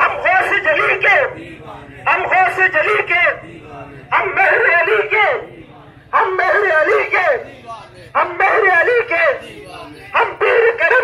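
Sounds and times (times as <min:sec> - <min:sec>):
man chanting over loudspeaker: 0:00.0 - 0:11.0.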